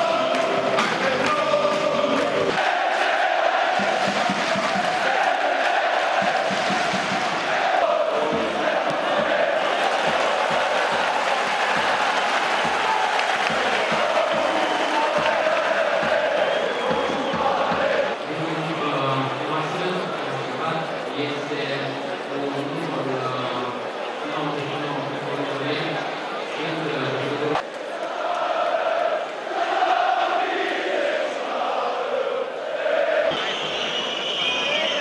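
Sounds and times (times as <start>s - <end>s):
stadium crowd chanting: 0.0s - 18.3s, 27.5s - 35.0s.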